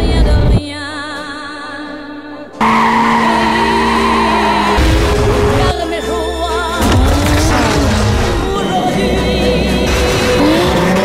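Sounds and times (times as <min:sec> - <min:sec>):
music: 0:00.0 - 0:11.0
tyres squealing: 0:02.6 - 0:05.8.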